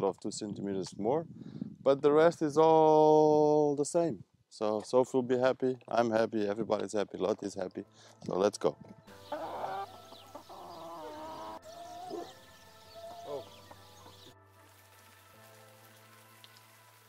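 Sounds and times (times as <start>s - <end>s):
soft background music: 5.1s - 17.0s
chickens clucking: 9.1s - 14.3s.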